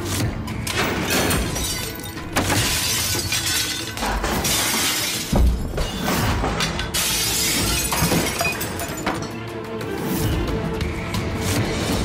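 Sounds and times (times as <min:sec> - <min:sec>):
dramatic background score: 0:08.8 - 0:12.0.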